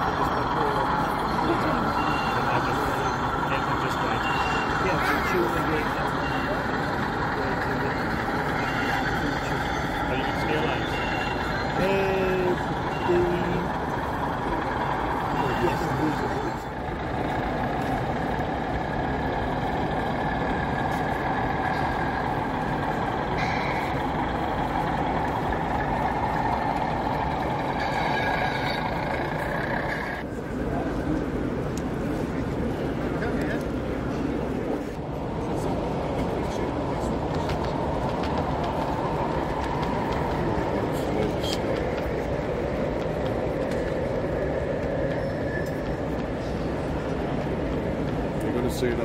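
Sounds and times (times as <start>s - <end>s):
engine-like running sound: 0.0s - 49.0s
murmur of many voices: 0.0s - 49.0s
short high beeps: 4.2s - 4.8s.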